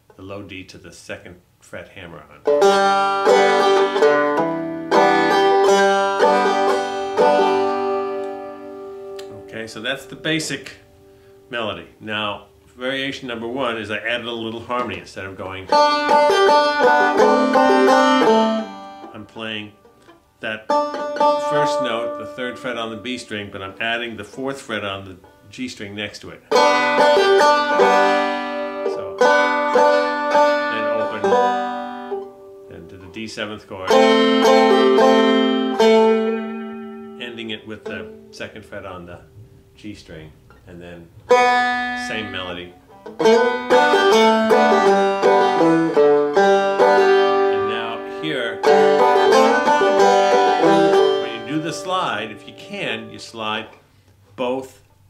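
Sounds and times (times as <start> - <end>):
banjo plucked notes: 2.4 - 53.8.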